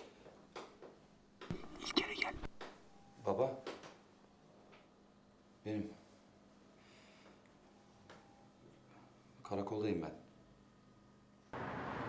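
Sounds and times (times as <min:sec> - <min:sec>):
person whispering: 0:01.5 - 0:02.5.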